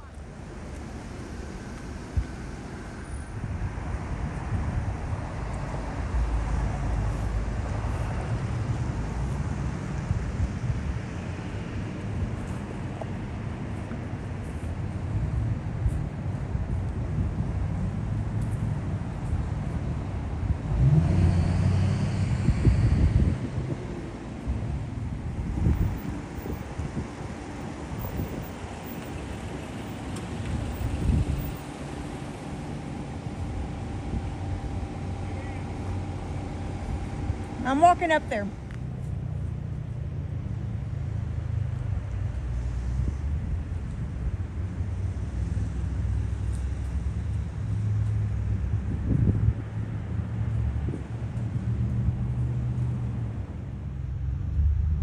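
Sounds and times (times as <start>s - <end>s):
motor vehicle rumbling: 0.0s - 55.0s.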